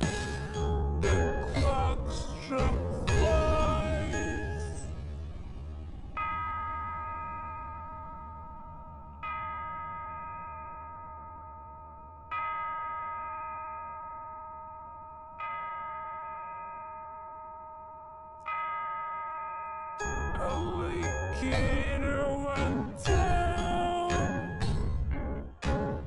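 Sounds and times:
clock chime striking: 0.0s - 4.9s, 6.2s - 26.0s.

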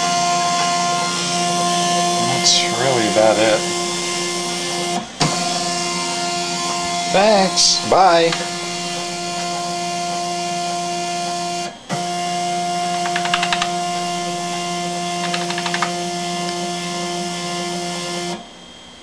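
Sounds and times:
stepper motors whining: 0.0s - 18.4s
rapid clicking: 13.0s - 13.7s, 15.2s - 15.9s.

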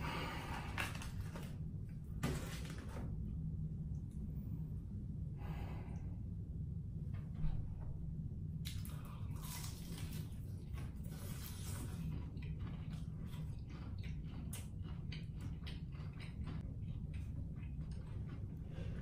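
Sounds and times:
steady low hum: 0.0s - 19.0s
crunchy chewing of fried chicken: 8.7s - 19.0s.

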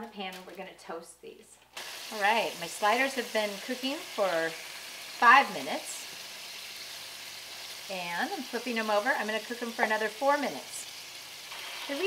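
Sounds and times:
meat patties sizzling in a pan: 1.8s - 12.0s.

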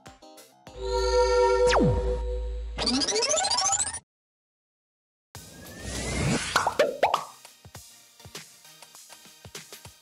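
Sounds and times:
plopping pops: 6.8s - 7.3s.

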